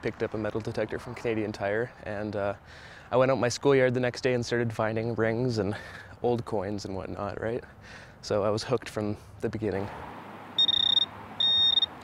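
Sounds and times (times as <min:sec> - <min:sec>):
pinpointer probe beeping: 0:10.6 - 0:12.0.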